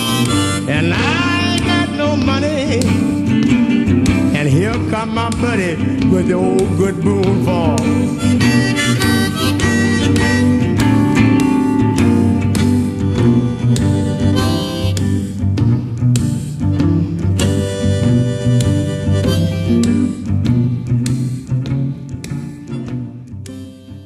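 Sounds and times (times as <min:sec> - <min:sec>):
harmonica: 0:00.0 - 0:21.5, 0:22.3 - 0:24.0
electric guitar steady beat: 0:00.0 - 0:24.0.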